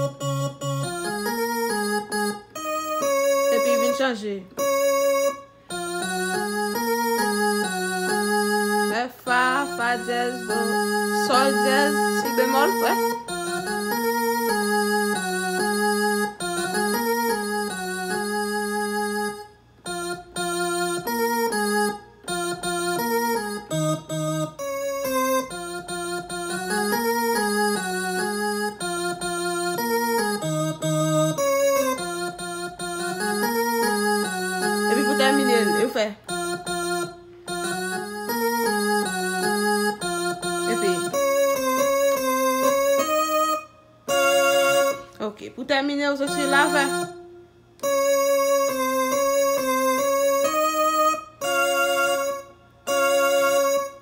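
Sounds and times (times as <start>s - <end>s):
piano melody: 0.0s - 54.0s.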